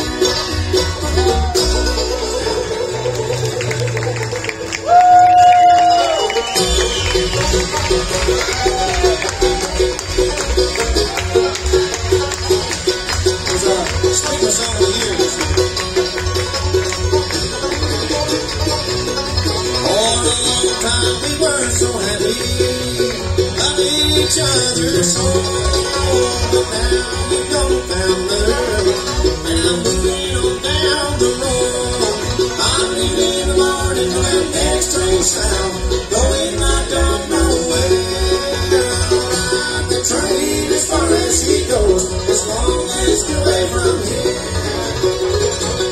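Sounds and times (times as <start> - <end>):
acoustic string instrument: 0.0 - 45.9
banjo picking: 0.0 - 45.9
upright bass: 0.0 - 45.9
person singing: 19.8 - 45.0.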